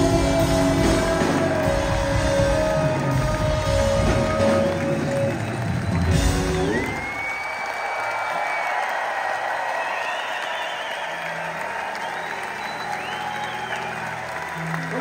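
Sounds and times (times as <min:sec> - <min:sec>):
audience applauding: 0:00.0 - 0:15.0
high whistles from crowd: 0:04.2 - 0:14.9.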